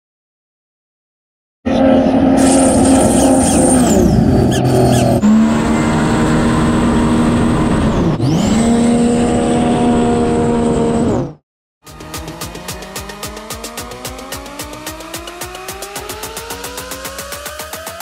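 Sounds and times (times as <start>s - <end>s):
jet ski engines revving: 1.7s - 11.3s
high engine whine: 1.7s - 18.0s.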